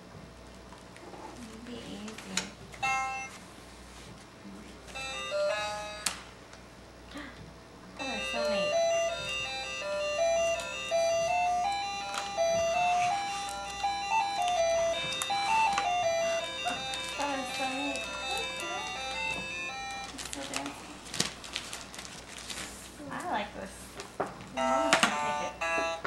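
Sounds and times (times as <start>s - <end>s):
toy keyboard beeping tune: 2.8s - 3.4s, 5.0s - 6.2s, 8.0s - 20.7s, 24.6s - 26.0s.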